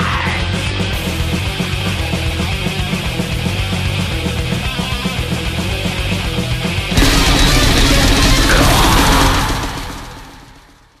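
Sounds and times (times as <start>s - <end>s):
metal guitar chord ringing: 7.0s - 10.9s.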